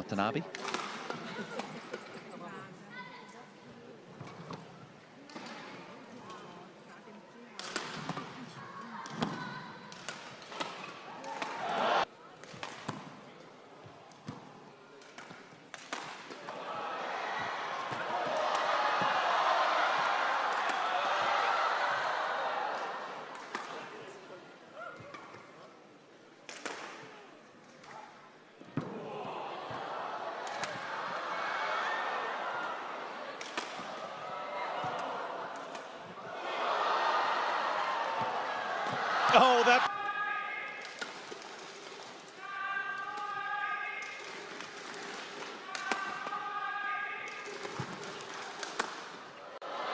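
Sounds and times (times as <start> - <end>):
rackets hitting shuttlecock: 0.5 - 2.2, 7.6 - 11.8, 12.4 - 13.2, 14.1 - 16.6, 20.0 - 21.2, 22.7 - 24.2, 24.9 - 25.6, 26.5 - 27.2, 30.4 - 31.2, 33.3 - 36.3, 40.8 - 42.1, 44.0 - 46.3, 47.2 - 49.2
crowd cheering and applauding: 11.5 - 12.1, 16.5 - 23.3, 29.0 - 39.9.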